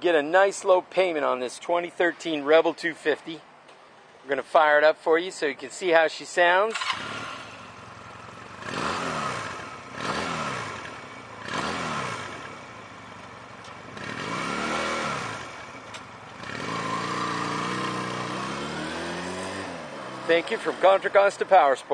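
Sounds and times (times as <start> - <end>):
motorcycle pulling away: 6.7 - 21.2
motorcycle engine idling and revving: 6.7 - 21.9.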